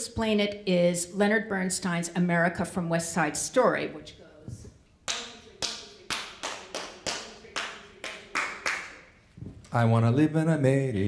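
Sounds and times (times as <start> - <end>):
sharp hand claps: 5.1 - 9.0.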